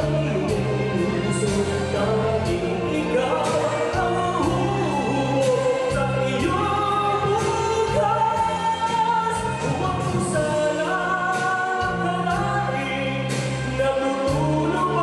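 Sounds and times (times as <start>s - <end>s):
backing music with bass: 0.0s - 15.0s
man singing a slow ballad: 0.0s - 15.0s.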